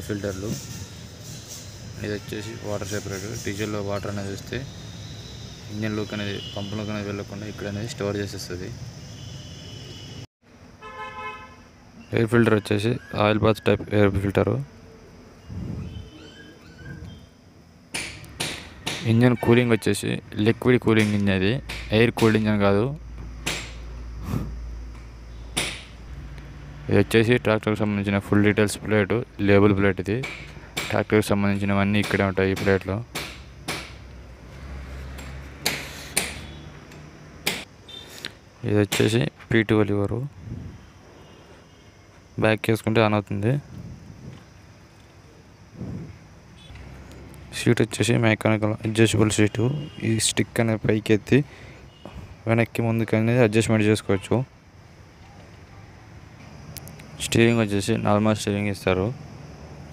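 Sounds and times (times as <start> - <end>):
vehicle horn toot: 5.1 - 7.1, 9.1 - 11.7
sharp metallic knocks: 17.9 - 19.5, 20.9 - 22.6, 23.2 - 23.9, 24.9 - 26.0, 30.0 - 34.1, 35.1 - 37.7, 38.8 - 39.2.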